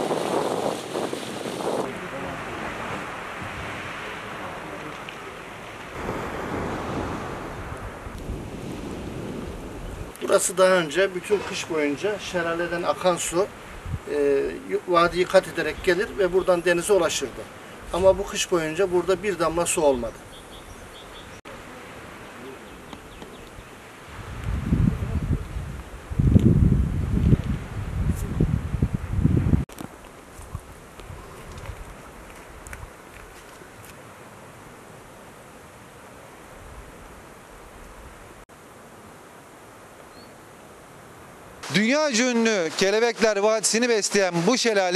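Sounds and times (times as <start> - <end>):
wind on microphone: 0.0 - 5.1, 5.8 - 10.2, 13.5 - 14.1, 22.8 - 29.7, 30.4 - 33.4
sea noise: 0.0 - 28.0, 29.0 - 44.9.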